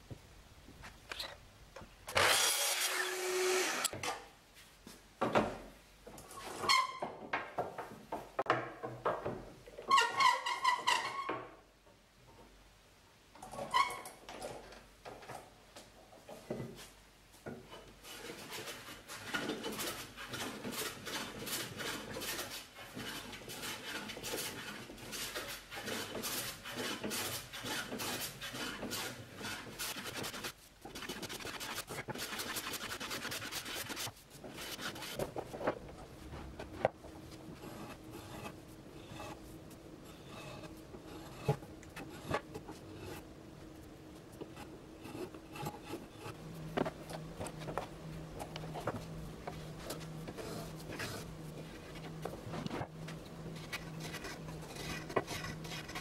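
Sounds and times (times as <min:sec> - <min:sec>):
miter saw cutting wood: 0:02.1 - 0:04.0
hand plane shaving board: 0:18.0 - 0:35.3, 0:40.0 - 0:43.2.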